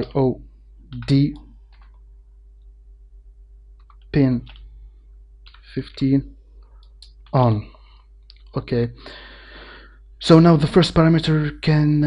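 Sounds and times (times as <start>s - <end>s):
man saying a word: 0.0s - 0.4s, 1.0s - 1.4s, 7.4s - 7.6s
steady low hum: 0.0s - 12.0s.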